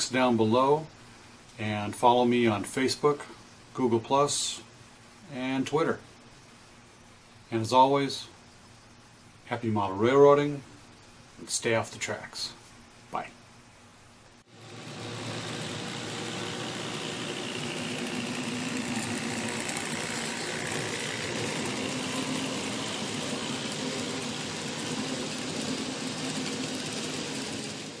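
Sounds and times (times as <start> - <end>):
model train motor humming: 14.5 - 28.0
wheels rolling on track: 14.5 - 28.0.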